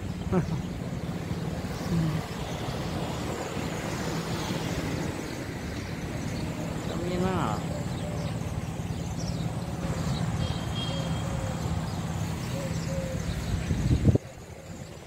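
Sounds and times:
bus engines idling: 0.0s - 15.0s
traffic noise: 0.0s - 15.0s.

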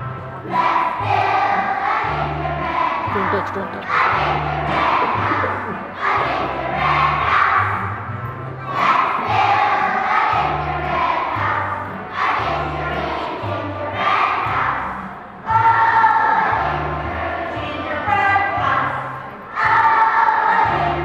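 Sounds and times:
children's choir singing: 0.0s - 21.0s.

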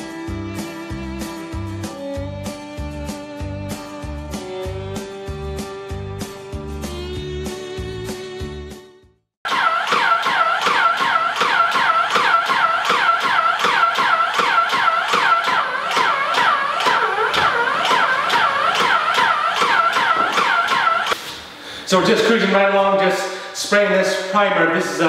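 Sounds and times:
paint sprayer motor whine: 9.5s - 21.2s.

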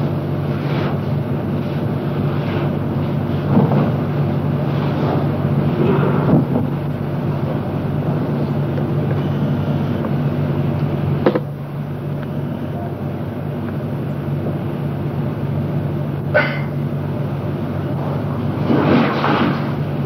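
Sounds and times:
low hum with hiss: 0.0s - 20.0s.

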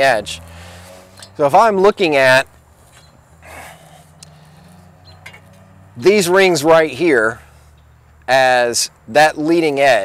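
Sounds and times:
breath out through nose: 3.4s - 4.8s.

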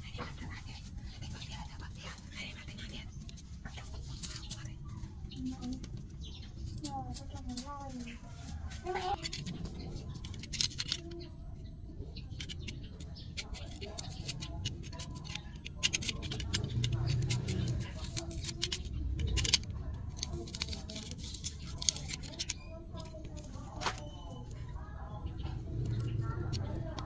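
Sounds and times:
faint voices: 0.0s - 27.0s
hand handling noise: 5.4s - 11.4s, 12.2s - 27.0s.

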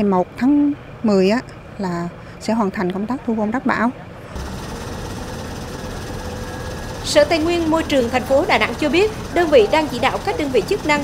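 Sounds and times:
diesel engine rumbling: 0.0s - 11.0s.

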